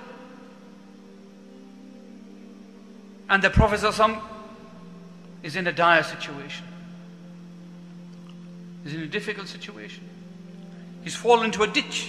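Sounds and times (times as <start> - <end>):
soft held chord music: 0.0 - 12.0.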